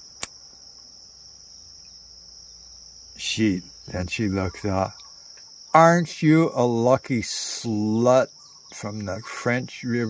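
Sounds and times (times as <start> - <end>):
high-pitched insect trill: 0.0 - 10.0
sharp click: 0.2 - 0.4.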